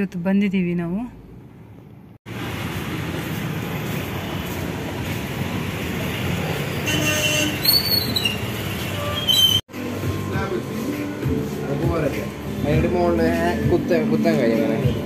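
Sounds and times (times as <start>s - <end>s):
traffic rumble: 0.0s - 15.0s
voices in a shop: 0.0s - 15.0s.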